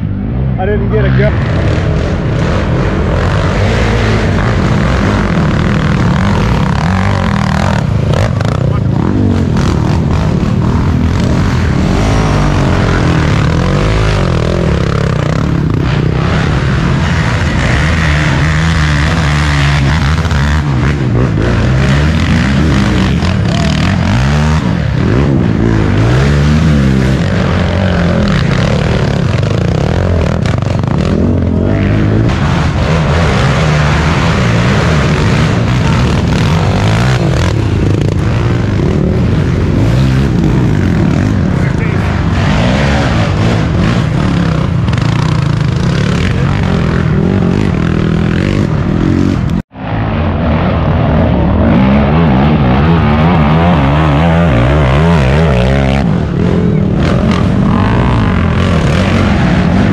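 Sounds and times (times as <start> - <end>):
quad engines revving: 0.0 - 59.9.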